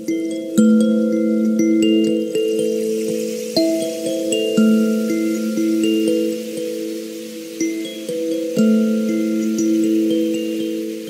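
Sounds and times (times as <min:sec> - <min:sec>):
soft plucked kalimba notes: 0:00.0 - 0:11.0.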